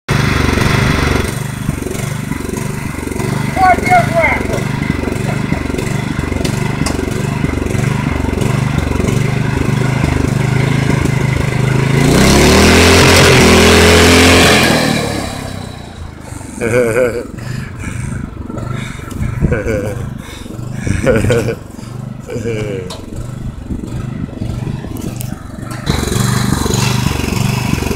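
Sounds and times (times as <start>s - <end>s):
small gasoline engine revving: 0.1s - 27.9s.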